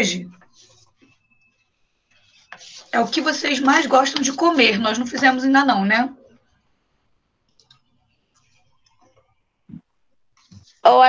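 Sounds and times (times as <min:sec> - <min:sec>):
woman speaking: 0:00.0 - 0:00.3, 0:03.0 - 0:06.2.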